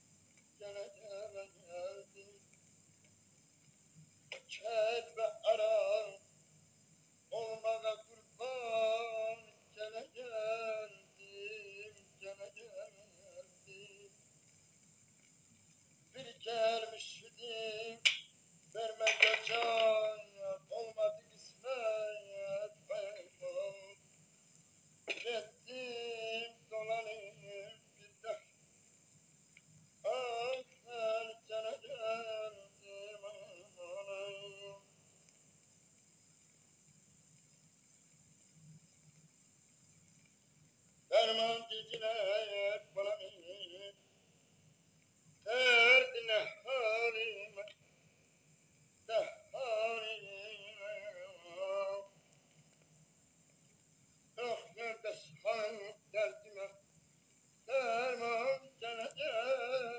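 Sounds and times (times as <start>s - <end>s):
person singing: 18.8s - 24.0s, 25.1s - 28.4s, 30.1s - 34.8s, 49.1s - 52.1s, 57.7s - 59.9s.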